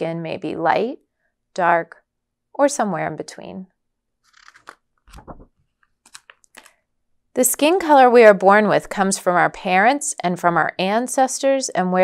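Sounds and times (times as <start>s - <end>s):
paper page turning: 4.3s - 6.7s
book being handled thud: 4.6s - 5.6s.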